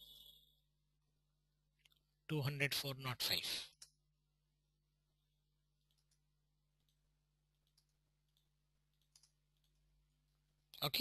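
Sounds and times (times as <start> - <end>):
man speaking: 2.3 - 3.8
keyboard keys clicking: 5.8 - 6.2, 6.8 - 9.8.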